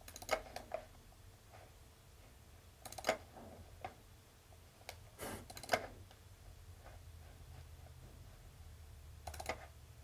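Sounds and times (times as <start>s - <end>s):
computer mouse clicks: 0.0s - 0.9s, 2.8s - 4.0s, 4.8s - 6.2s, 9.2s - 9.7s.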